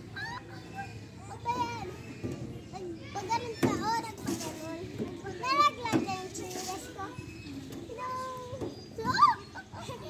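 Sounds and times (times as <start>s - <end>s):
children squealing and calling: 0.0s - 10.0s.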